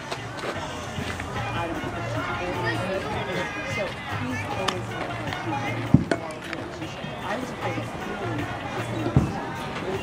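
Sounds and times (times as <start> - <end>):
indistinct chatter of voices: 0.0 - 10.0
dull thump: 5.9 - 6.3, 9.1 - 9.4.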